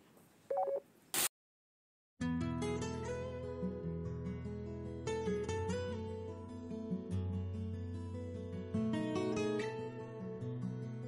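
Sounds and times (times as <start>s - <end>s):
two-tone electronic beep: 0.5s - 0.8s.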